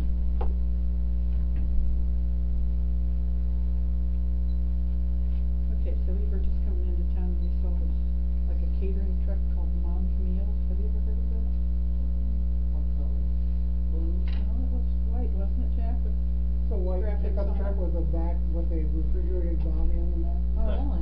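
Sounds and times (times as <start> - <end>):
electrical mains hum: 0.0 - 21.0.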